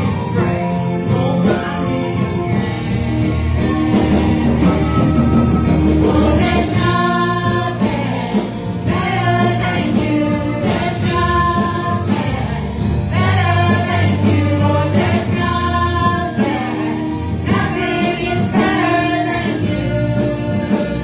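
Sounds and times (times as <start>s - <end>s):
guitars: 0.0s - 21.0s
keyboard: 0.0s - 21.0s
voices singing gospel: 2.6s - 21.0s.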